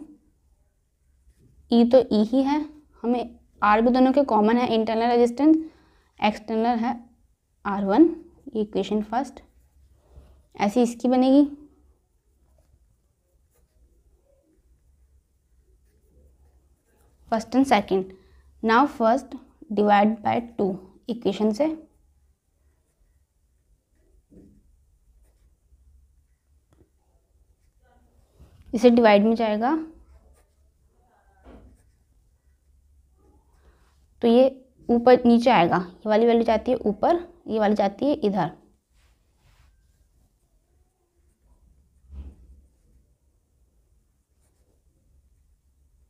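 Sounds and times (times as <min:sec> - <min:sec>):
pen scratching on paper: 0:08.1 - 0:11.7, 0:12.3 - 0:18.2, 0:22.6 - 0:33.6, 0:44.2 - 0:45.0.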